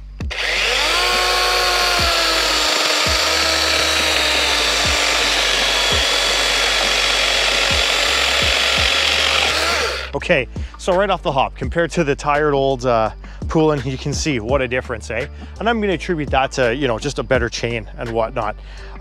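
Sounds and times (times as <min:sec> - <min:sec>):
electric chainsaw cutting wood: 0:00.2 - 0:10.2.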